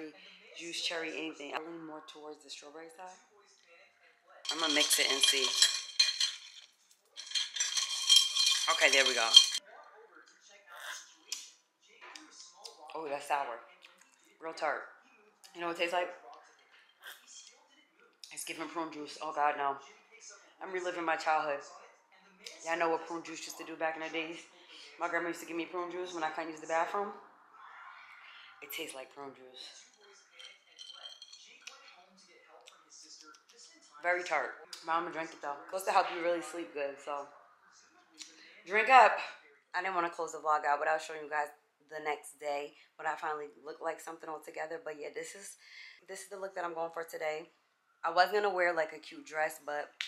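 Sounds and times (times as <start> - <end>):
spoon clinking in glass: 4.5 - 9.6, 30.0 - 31.5.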